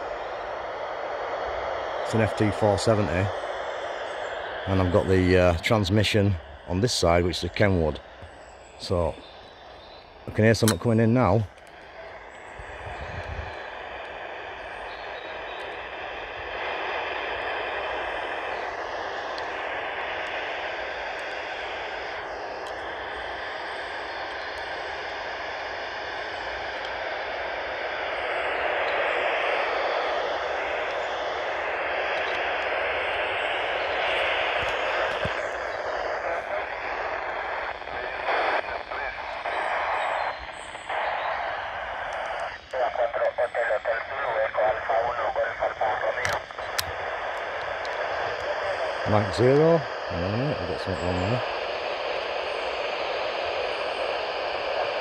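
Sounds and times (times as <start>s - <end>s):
radio hiss: 0.0s - 55.0s
weak noisy radio voices: 0.0s - 55.0s.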